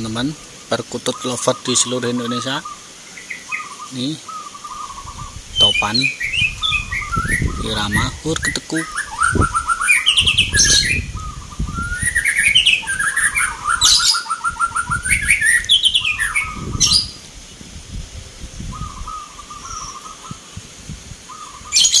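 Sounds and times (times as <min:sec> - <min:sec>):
doves cooing: 0:00.0 - 0:17.3, 0:18.6 - 0:22.0
higher bird chirps: 0:00.0 - 0:17.7, 0:18.5 - 0:22.0.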